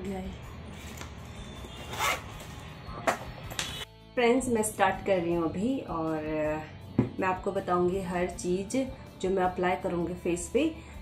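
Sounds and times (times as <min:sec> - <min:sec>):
zipper on fabric pouch: 0:01.8 - 0:02.4.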